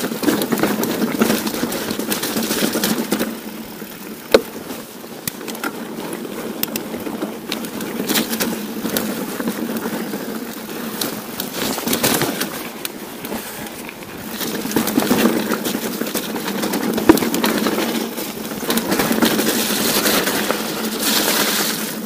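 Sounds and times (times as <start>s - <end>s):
bike rattling and knocking: 0.0s - 22.0s
bike tyres crunching on stones: 0.0s - 22.0s.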